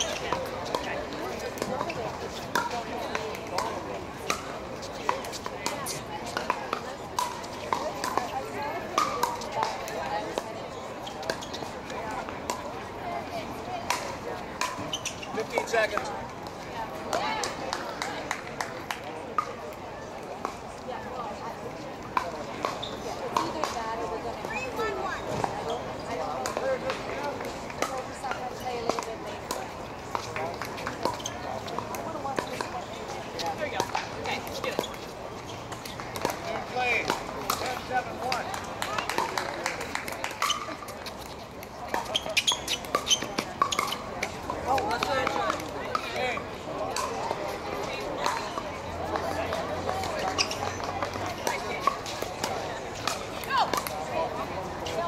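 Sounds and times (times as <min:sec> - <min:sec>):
crowd talking: 0:00.0 - 0:55.0
paddles striking balls: 0:33.4 - 0:55.0.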